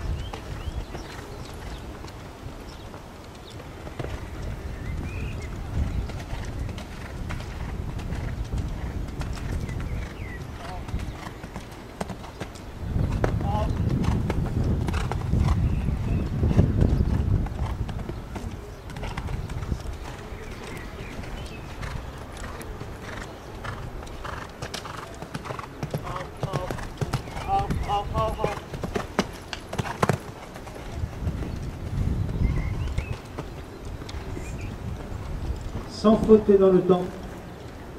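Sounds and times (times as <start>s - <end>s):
horse hoofbeats on sand: 0.0s - 37.2s.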